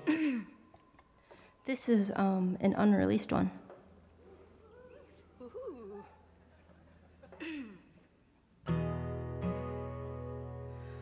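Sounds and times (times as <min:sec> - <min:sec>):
acoustic guitar chord strummed: 0:08.6 - 0:11.0.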